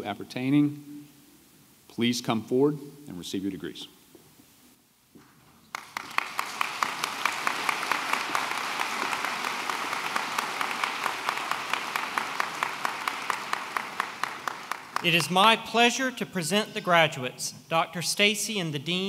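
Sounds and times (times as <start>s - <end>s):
audience applauding: 5.7s - 15.5s.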